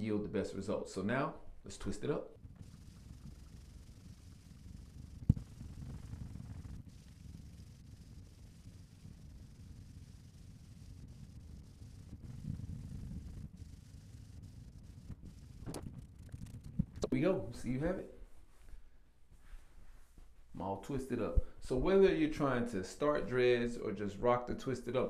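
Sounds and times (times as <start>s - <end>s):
low room rumble: 0.0s - 25.0s.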